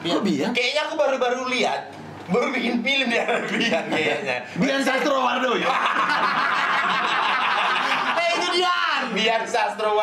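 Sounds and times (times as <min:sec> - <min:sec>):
laughter: 0:05.6 - 0:08.5.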